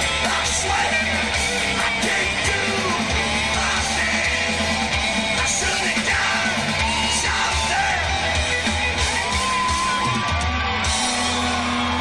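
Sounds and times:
man singing: 0.0 - 8.8
drums: 0.0 - 12.0
electric guitar: 0.0 - 12.0.

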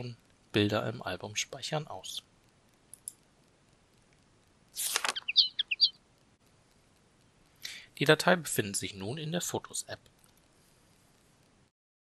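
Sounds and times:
high bird-like chirps: 4.8 - 6.0.

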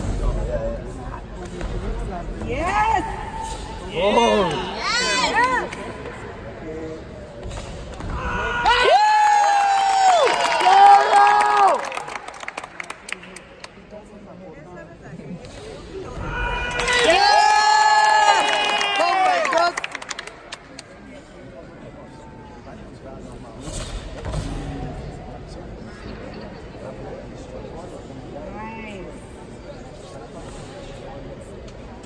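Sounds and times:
spectators cheering: 8.4 - 12.4, 16.4 - 20.0.

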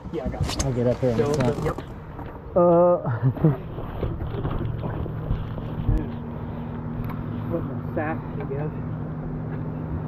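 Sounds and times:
boat motor humming: 0.7 - 10.0.

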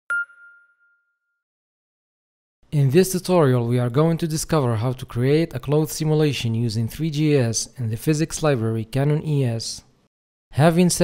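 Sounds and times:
bright ding chime: 0.1 - 1.4.

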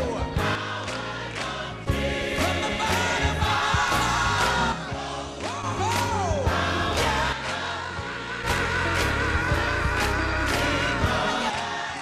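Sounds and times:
gospel choir singing: 0.0 - 12.0
people clapping: 0.6 - 12.0.

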